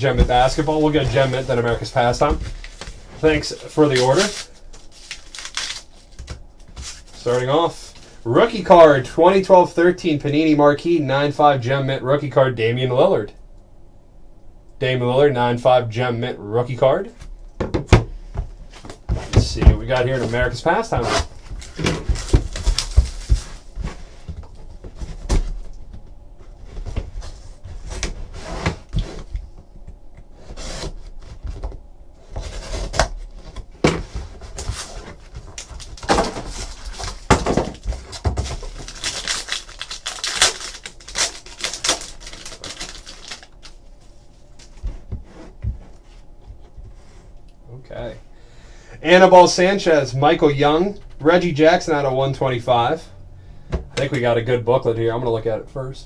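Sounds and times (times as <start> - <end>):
cardboard and plastic rustling: 0.0 - 8.6, 18.0 - 29.6, 30.3 - 47.2
box cutter slitting plastic wrap: 36.0 - 43.5.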